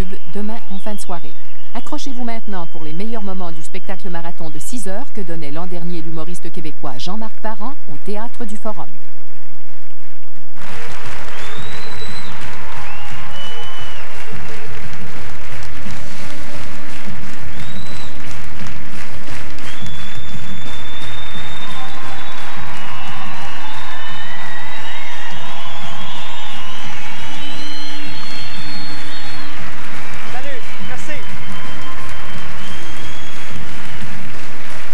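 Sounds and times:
audience applauding: 10.6s - 34.9s.

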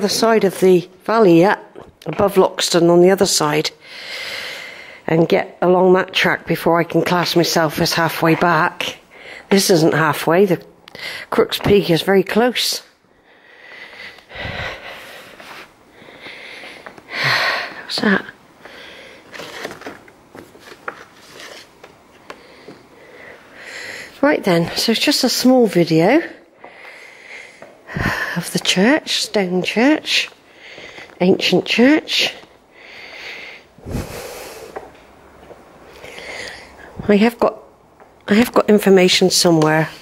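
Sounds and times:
breaths and sniffs: 32.3s - 34.9s.

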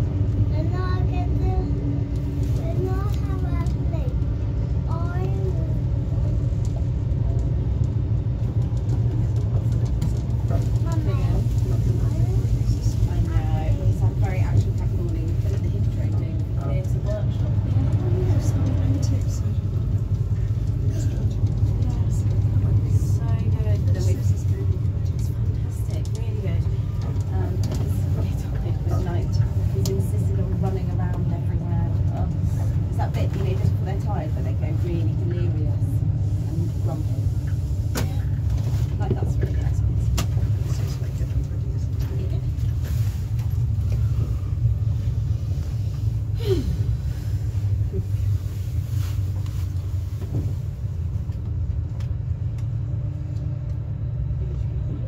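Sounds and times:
indistinct passenger voices: 0.0s - 55.0s
train rumble from inside coach: 0.0s - 55.0s.

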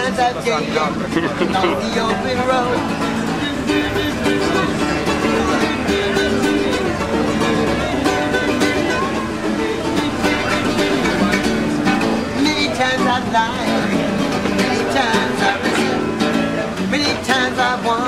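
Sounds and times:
acoustic guitar strumming: 0.0s - 18.0s.

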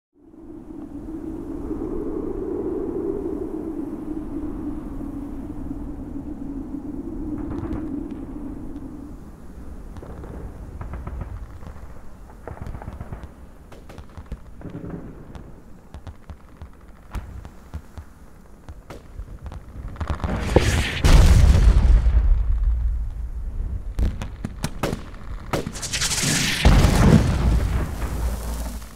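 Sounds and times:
sharp cracks: 9.9s - 28.9s
loud explosion with rumble: 20.0s - 28.9s.

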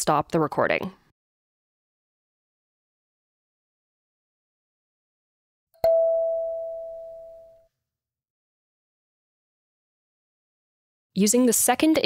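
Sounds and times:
kalimba tine plucked: 5.8s - 7.6s.

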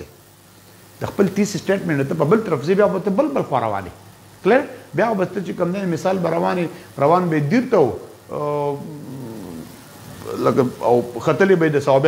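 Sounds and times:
man's hesitation sound: 8.3s - 11.2s.

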